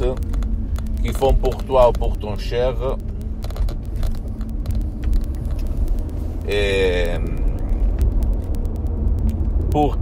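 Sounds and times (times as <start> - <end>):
faint clicks: 0.0 - 6.3
car cabin rumble: 0.0 - 10.0.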